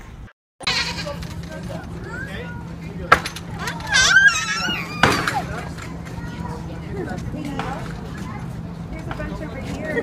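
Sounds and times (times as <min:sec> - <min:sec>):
goat bleating: 0:00.6 - 0:01.2, 0:03.9 - 0:05.0
voices: 0:00.7 - 0:10.0.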